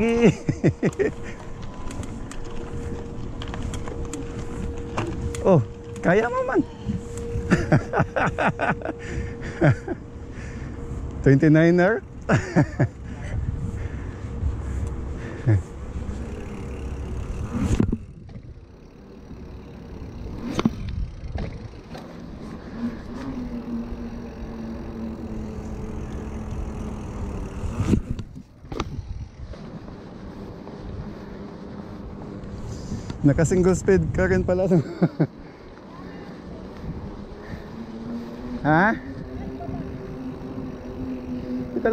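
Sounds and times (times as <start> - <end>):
wind buffeting microphone: 0.0 - 11.2, 12.0 - 34.8, 35.6 - 41.9
bike tyres rolling on pavement: 0.0 - 41.9.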